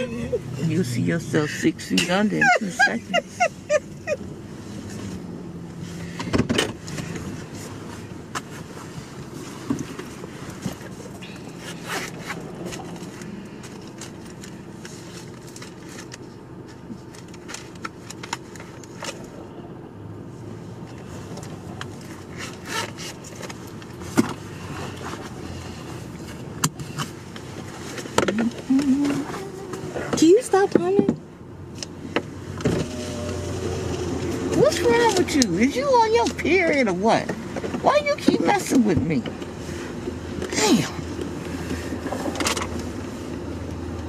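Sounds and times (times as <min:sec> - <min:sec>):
car engine and road hum: 0:00.0 - 0:44.0.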